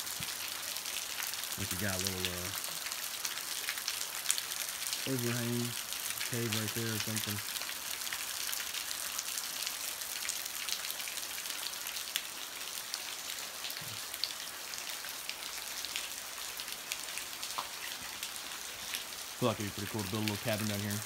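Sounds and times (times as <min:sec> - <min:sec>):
creek running over rocks: 0:00.0 - 0:21.0.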